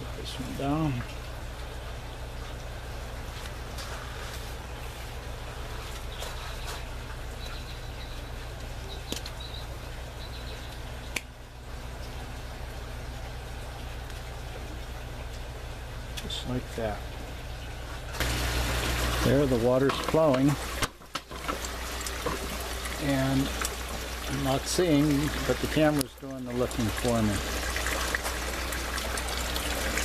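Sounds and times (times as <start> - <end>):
trickling water: 0.0 - 30.0.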